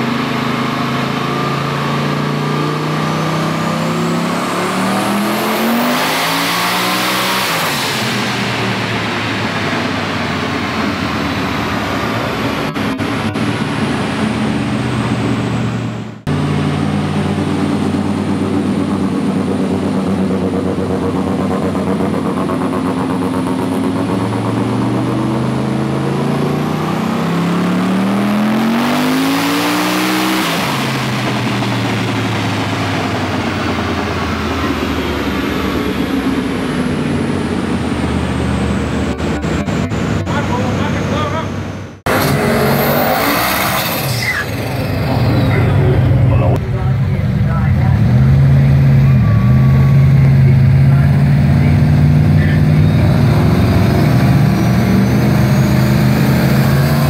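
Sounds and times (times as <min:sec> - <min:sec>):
car engine revving at full throttle: 0:00.0 - 0:57.0
high whine: 0:00.0 - 0:57.0.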